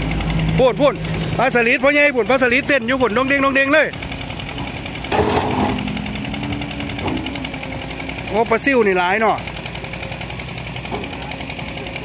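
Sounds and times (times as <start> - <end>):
engine-driven water pump running: 0.0 - 12.0.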